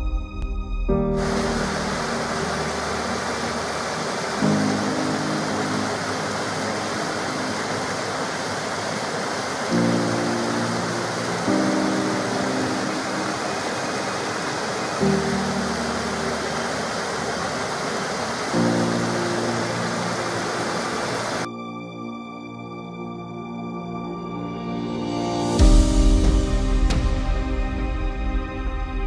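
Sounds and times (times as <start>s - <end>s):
soft background music: 0.0s - 29.0s.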